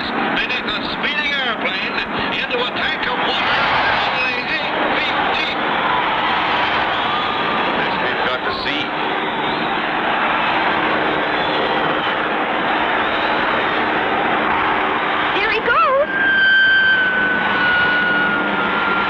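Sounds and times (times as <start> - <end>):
noisy background drone: 0.0 - 19.0
falling whistle: 9.0 - 9.9, 16.1 - 19.0.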